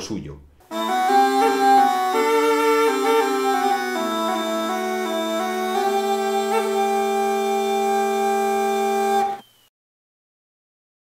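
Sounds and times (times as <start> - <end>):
bagpipes sustained chord: 0.7 - 9.4.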